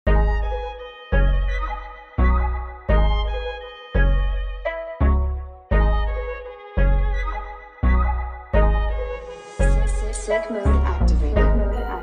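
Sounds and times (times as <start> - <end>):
deep bass notes: 0.1 - 12.0
hip-hop instrumental beat: 0.1 - 12.0.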